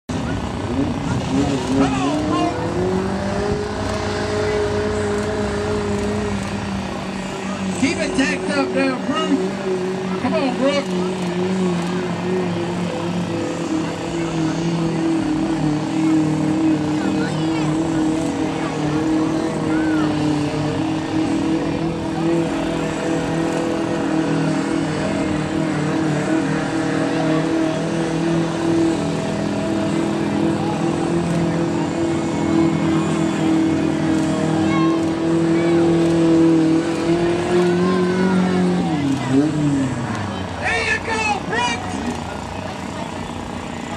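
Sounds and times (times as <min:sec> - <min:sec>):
truck engine at high revs: 0:00.1 - 0:43.9.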